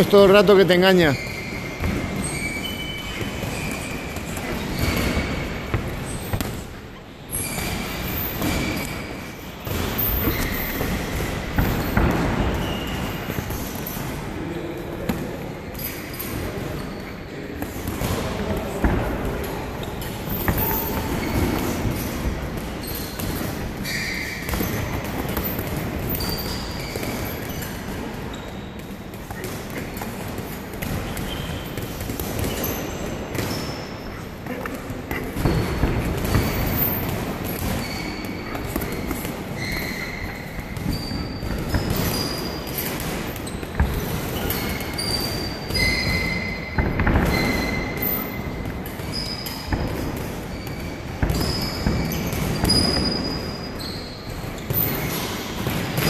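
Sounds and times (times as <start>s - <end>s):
sneaker squeaks: 0.0s - 56.0s.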